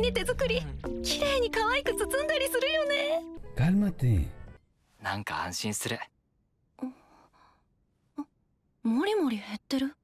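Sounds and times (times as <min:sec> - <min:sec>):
soft breathy sigh: 0:06.8 - 0:07.6.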